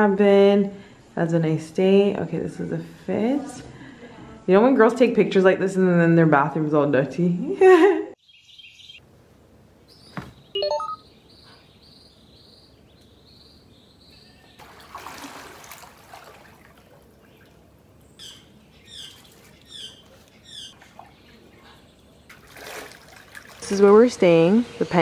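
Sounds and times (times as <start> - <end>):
small birds chirping: 8.2 - 9.0, 9.8 - 14.6, 17.1 - 25.0
water sloshing from swimmer: 14.6 - 17.9, 18.5 - 24.4.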